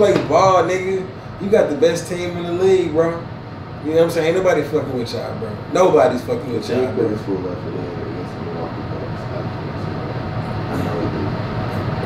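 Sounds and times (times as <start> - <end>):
low room noise rumble: 0.0 - 12.0.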